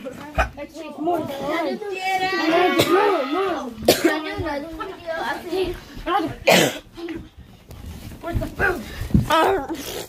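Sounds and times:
child coughing harshly: 2.6 - 3.2, 3.8 - 4.4, 6.4 - 7.0
child making vocal sounds: 9.3 - 10.0.

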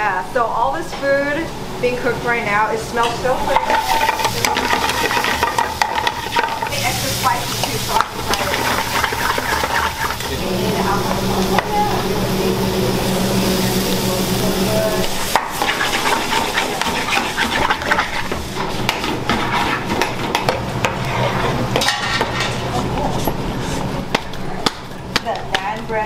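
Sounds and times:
metal utensils clinking on pans: 3.0 - 10.3, 15.3 - 22.7
vegetables sizzling in a pan: 3.5 - 20.2
low hum: 8.0 - 15.3.

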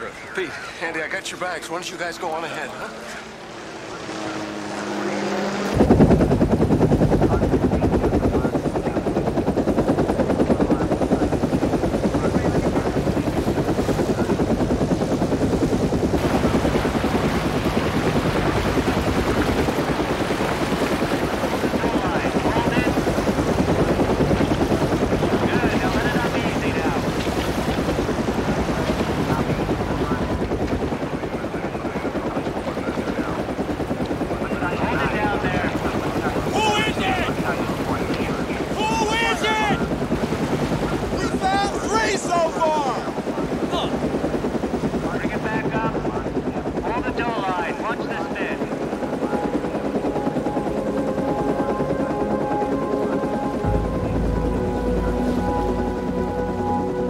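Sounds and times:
helicopter rotor chopping: 0.0 - 57.0.

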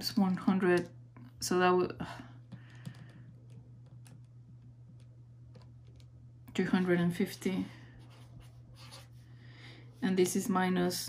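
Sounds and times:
steady low hum: 0.0 - 11.0
scratching and rubbing on paper: 8.0 - 9.2.

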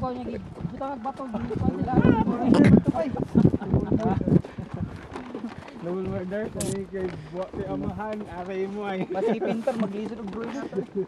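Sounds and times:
voices talking outdoors: 0.0 - 11.0.

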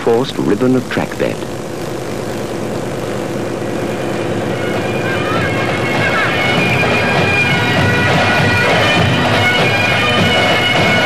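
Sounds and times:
tape hiss: 0.0 - 11.0
paving machine running: 1.4 - 11.0.

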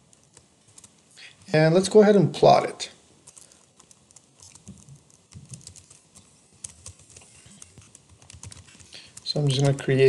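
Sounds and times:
faint keyboard keystrokes: 3.2 - 10.0.

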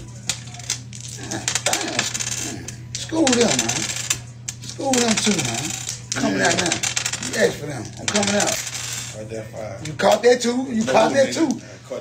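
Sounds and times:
faint voices: 0.0 - 10.0
banknotes rustling and flicking: 0.0 - 11.7.

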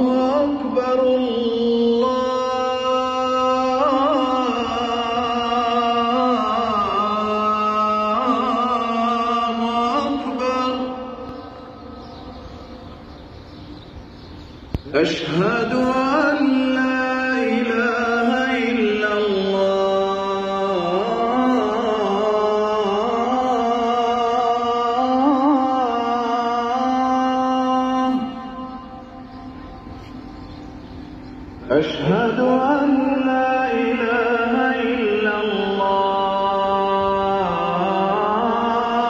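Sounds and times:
amplified call to prayer echo: 0.0 - 13.7, 14.7 - 39.0
low open-air background hum: 0.0 - 39.0.

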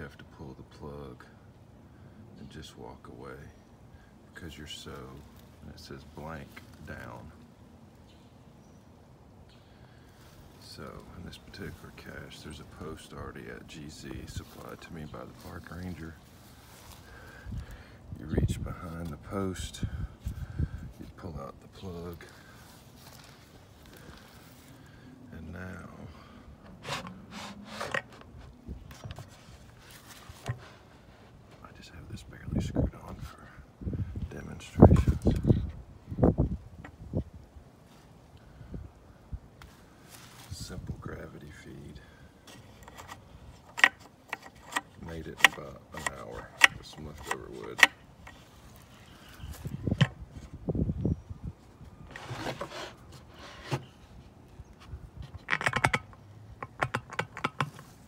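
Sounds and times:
soft rustle: 14.0 - 17.8, 20.2 - 25.0, 26.6 - 32.0, 37.8 - 38.3, 39.6 - 41.2, 47.4 - 50.7
wood scraping and rubbing: 26.6 - 31.6, 42.5 - 50.6, 52.0 - 58.0
sharp clicks and knocks on wood: 42.5 - 48.4, 54.8 - 58.0.

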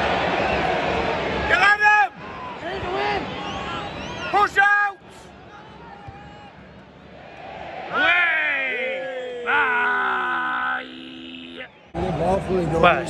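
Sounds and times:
stadium crowd groaning: 0.0 - 13.0
fans shouting: 7.2 - 13.0.

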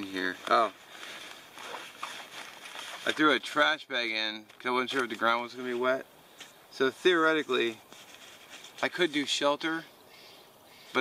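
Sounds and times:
gear rustling in fabric backpack: 0.1 - 3.6
plastic bag rustling: 0.2 - 3.4.

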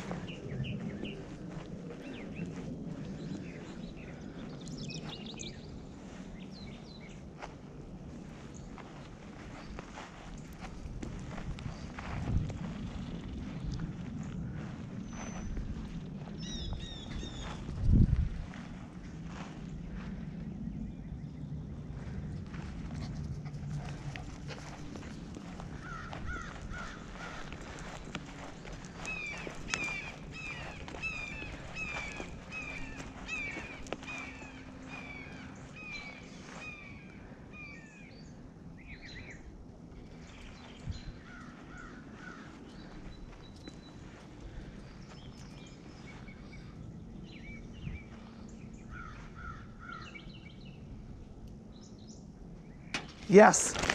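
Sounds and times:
low rumble and rustling: 0.0 - 53.9.

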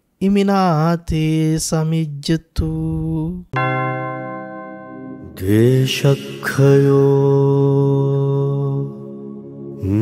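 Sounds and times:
person chanting: 5.0 - 10.0.

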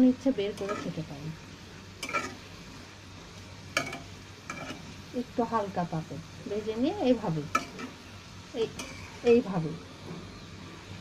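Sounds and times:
food frying in oil: 0.0 - 11.0
metal spatula clicking on pan: 0.6 - 0.9, 2.0 - 2.4, 3.8 - 4.8, 7.5 - 7.9.

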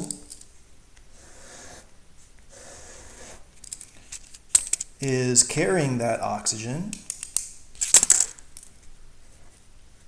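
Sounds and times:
pen scratching on paper: 2.5 - 3.5.

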